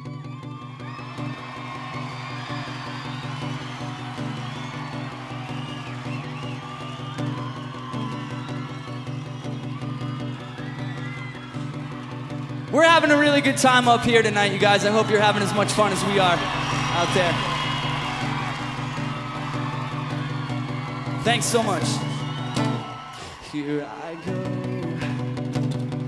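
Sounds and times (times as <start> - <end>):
audience cheering and whooping: 0.0 - 25.8
acoustic guitars strumming: 1.2 - 23.2.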